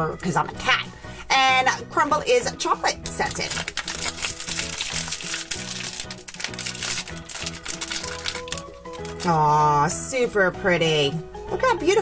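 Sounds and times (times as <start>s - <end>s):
background music: 0.0s - 12.0s
plastic wrapper crinkling: 3.0s - 9.4s.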